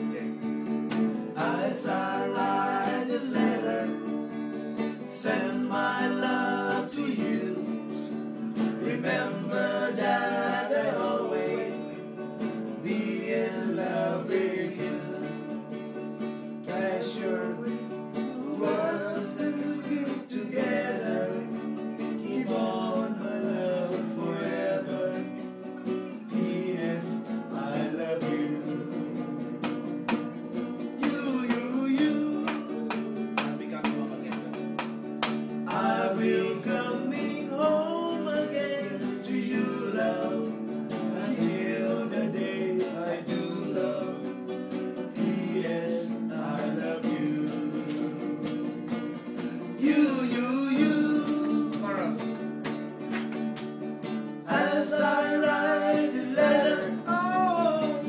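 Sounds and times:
strummed acoustic guitar: 0:00.0 - 0:58.0
men singing together: 0:01.2 - 0:30.3, 0:31.0 - 0:33.2, 0:35.5 - 0:52.6, 0:54.4 - 0:58.0.

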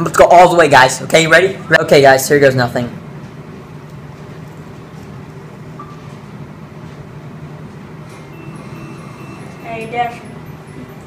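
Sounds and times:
steady low hum: 0:00.0 - 0:11.0
faint high thin tones: 0:08.1 - 0:11.0.

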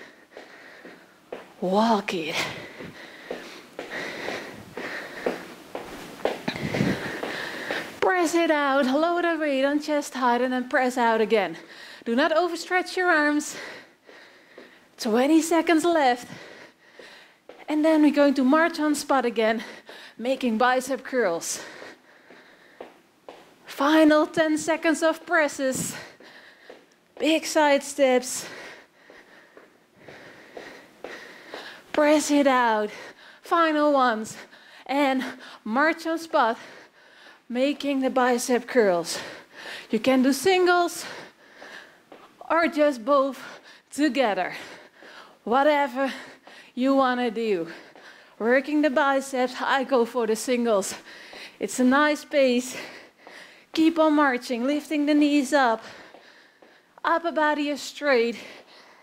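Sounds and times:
woman breathing: 0:00.0 - 0:08.1, 0:11.5 - 0:12.1, 0:13.1 - 0:15.0, 0:15.6 - 0:17.7, 0:18.8 - 0:23.6, 0:25.1 - 0:53.8, 0:55.5 - 0:57.1, 0:58.0 - 0:59.0
footsteps on laminate floor: 0:00.0 - 0:08.4, 0:21.6 - 0:24.5, 0:25.1 - 0:27.7, 0:28.4 - 0:33.1, 0:46.0 - 0:48.8, 0:52.8 - 0:54.3, 0:55.7 - 0:56.8
footsteps thudding on floor: 0:00.4 - 0:01.6, 0:02.6 - 0:08.2.

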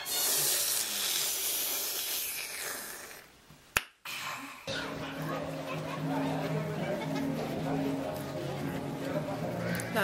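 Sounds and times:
loud even hiss: 0:00.0 - 0:03.3.

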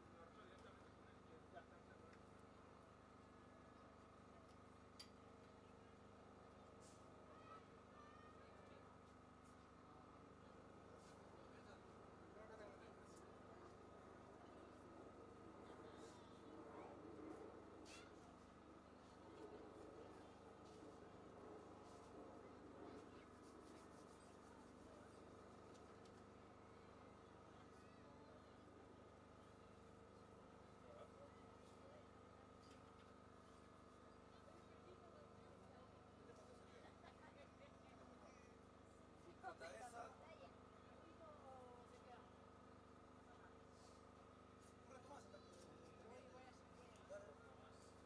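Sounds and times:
faint background hum: 0:00.0 - 0:48.0
faint click: 0:05.0 - 0:05.5.

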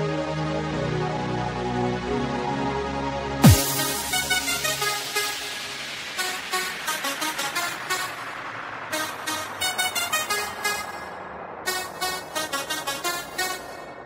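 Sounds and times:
staccato synth lead: 0:03.4 - 0:14.0.

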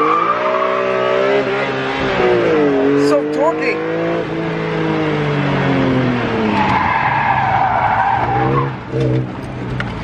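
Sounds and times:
car engine revving: 0:00.0 - 0:10.0.

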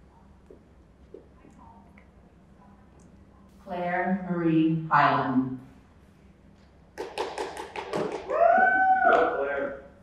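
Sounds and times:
person cheering call: 0:08.2 - 0:09.9.

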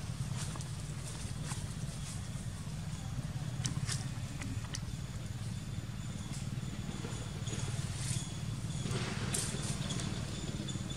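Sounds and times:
outdoor low rumble: 0:00.0 - 0:10.9.

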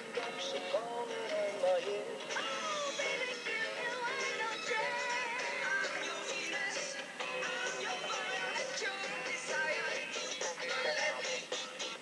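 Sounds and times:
pop song with singing: 0:00.0 - 0:12.0.

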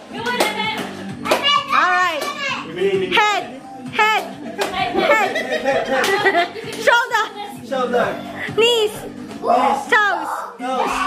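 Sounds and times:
background music: 0:00.0 - 0:11.0
children's excited voices: 0:09.4 - 0:11.0.

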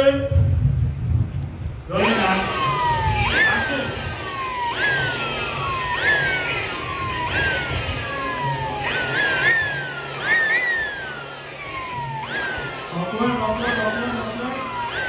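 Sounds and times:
whistling tone sliding down: 0:02.0 - 0:15.0.

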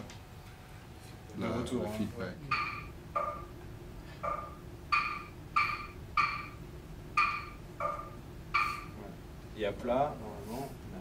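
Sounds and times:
short synthesized pings: 0:02.5 - 0:03.4.

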